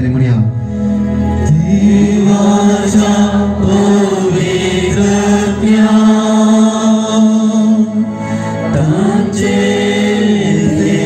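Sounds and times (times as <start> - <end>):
devotional prayer chant with music: 0.0 - 11.0.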